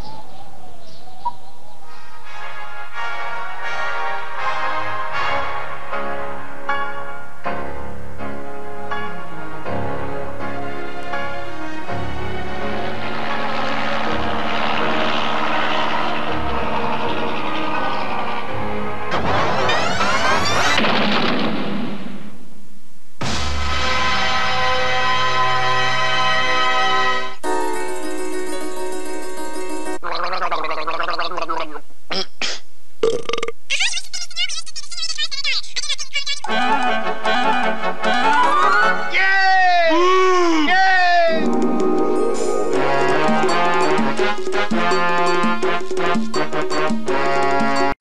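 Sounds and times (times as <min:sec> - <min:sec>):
music: 0:01.9 - 0:20.8, 0:23.2 - 0:30.0, 0:36.5 - 0:39.8, 0:41.1 - 0:48.0
cartoon propeller craft fly-by: 0:12.4 - 0:20.8
warbling voice-like sounds: 0:30.0 - 0:31.8
held synth chord: 0:41.5 - 0:48.0.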